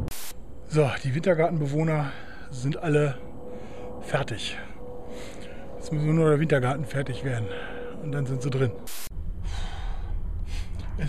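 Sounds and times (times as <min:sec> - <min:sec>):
low rumble on microphone: 0:00.0 - 0:11.0
breaths close to microphone: 0:07.5 - 0:08.0, 0:09.4 - 0:11.0.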